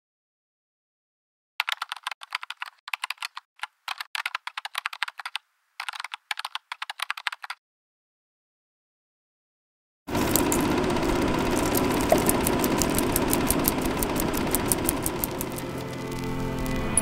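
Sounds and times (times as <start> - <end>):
mechanical rattling with rapid ticking: 10.1 - 16.8
music: 15.1 - 17.0.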